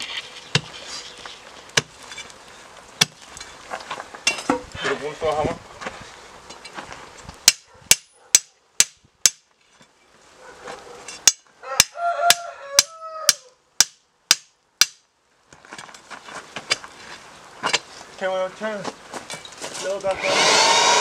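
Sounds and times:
hammer striking steel chisel bar: 11.2 - 15.0.

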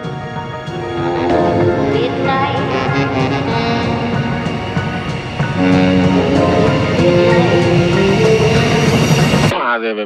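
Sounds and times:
electro swing music: 0.7 - 9.5.

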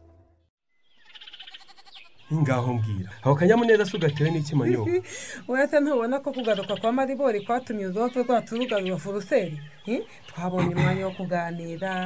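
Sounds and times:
animal bleating: 1.0 - 2.3, 3.5 - 4.8.

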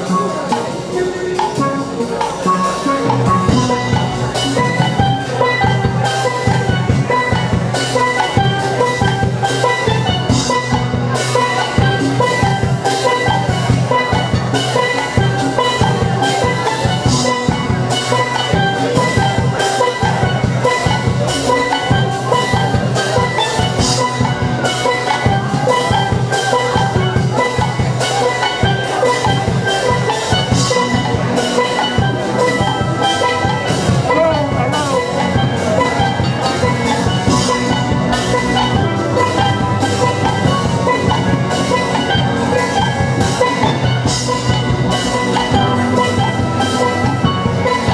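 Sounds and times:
percussion beat: 0.0 - 47.9
steelpans playing melody: 0.0 - 47.9.

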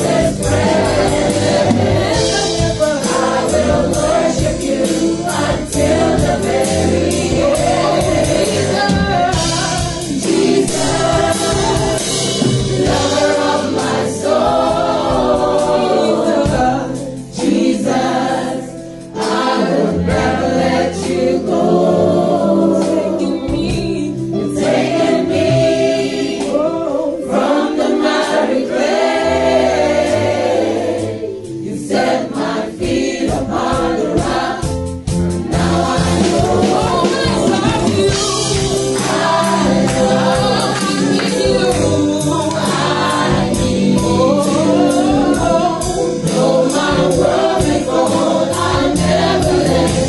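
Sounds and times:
women singing into microphones: 0.0 - 18.2, 19.2 - 28.5, 35.6 - 50.0
instrumental accompaniment: 0.0 - 50.0.

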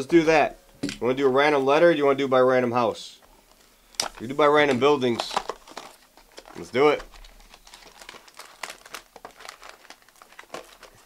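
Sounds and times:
foil wrappers crinkling: 3.5 - 11.0.

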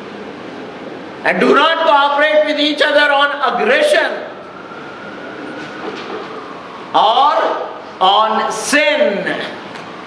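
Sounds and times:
steady background noise: 0.0 - 10.0
voice in large room: 0.0 - 10.0.

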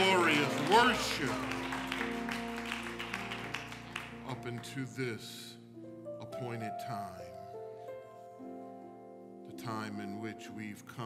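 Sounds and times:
hand claps: 0.0 - 4.8.

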